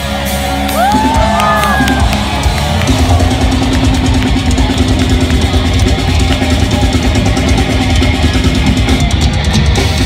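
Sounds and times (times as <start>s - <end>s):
distorted electric guitars: 0.0s - 10.0s
pounding drum kit: 0.0s - 10.0s.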